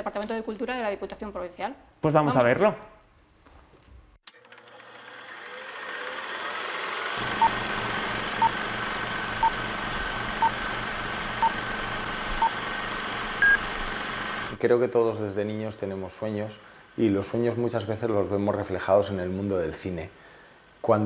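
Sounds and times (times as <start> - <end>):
film projector clatter: 4.3 - 14.6
higher beep: 13.4 - 13.6.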